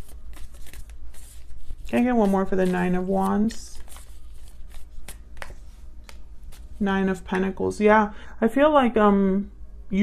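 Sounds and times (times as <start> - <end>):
cards being shuffled: 0.0 - 6.8
person speaking: 1.9 - 3.9, 6.8 - 10.0.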